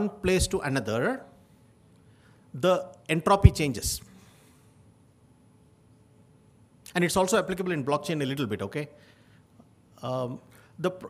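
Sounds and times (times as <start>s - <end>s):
man speaking: 0.0s - 1.4s, 2.6s - 4.1s, 6.9s - 9.0s, 10.0s - 11.0s.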